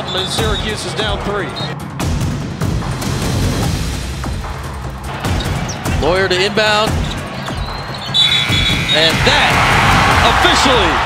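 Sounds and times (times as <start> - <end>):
arena crowd noise: 6.0 - 11.0.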